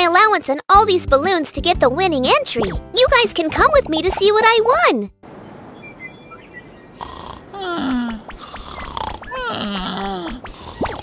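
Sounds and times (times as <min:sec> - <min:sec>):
cartoon snore falling in pitch: 0:07.0 - 0:11.0.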